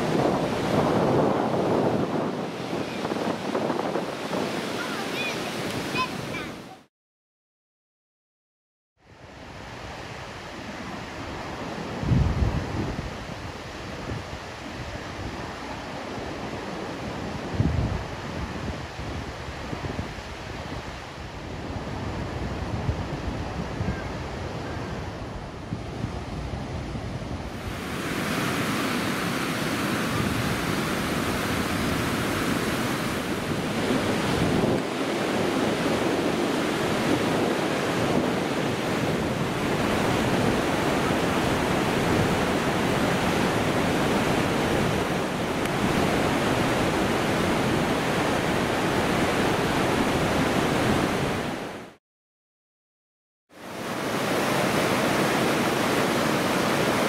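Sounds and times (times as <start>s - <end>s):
wind on microphone: 0.0s - 6.7s, 9.2s - 52.0s
stream rushing over rocks: 4.2s - 6.8s, 39.4s - 52.0s, 53.6s - 57.0s.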